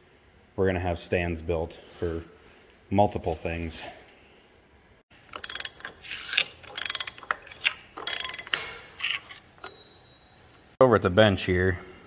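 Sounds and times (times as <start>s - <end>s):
ratchet clicking: 5.3s - 9.4s.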